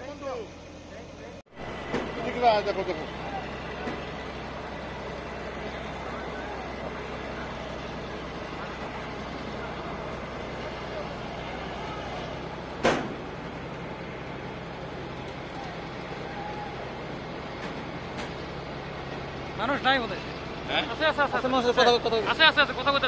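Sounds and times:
crane engine running: 0.0s - 23.0s
voices talking: 0.0s - 23.0s
sharp bang: 12.8s - 13.4s.

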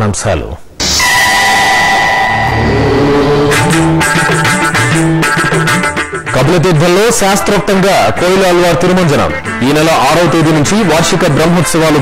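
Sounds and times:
whoosh with high held tones: 0.8s - 5.9s
musical notes: 0.8s - 6.6s.

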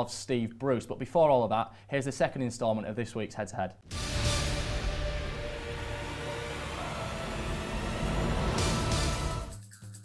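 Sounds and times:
held music tones: 3.9s - 9.6s.

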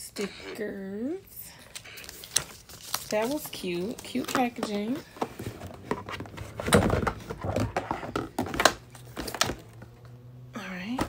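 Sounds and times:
cardboard box rustling: 2.0s - 9.9s.

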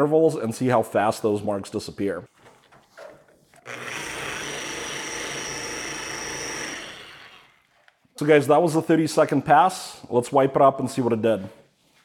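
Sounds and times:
electric polisher whining: 3.6s - 7.6s.

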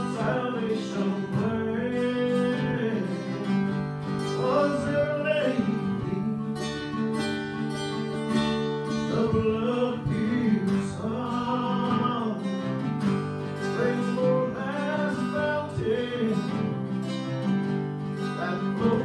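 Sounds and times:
man singing: 0.0s - 7.0s, 8.8s - 17.2s, 18.2s - 19.0s
acoustic guitar: 0.0s - 19.0s.

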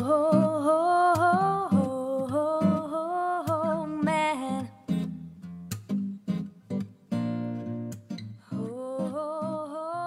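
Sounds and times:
woman singing wordless notes: 0.0s - 4.8s, 8.5s - 10.0s
acoustic guitar: 0.0s - 10.0s.

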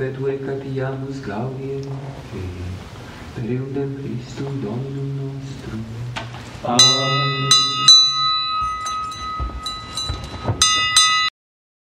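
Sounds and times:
low knocks: 6.2s - 11.3s
bell ringing: 6.8s - 11.3s.

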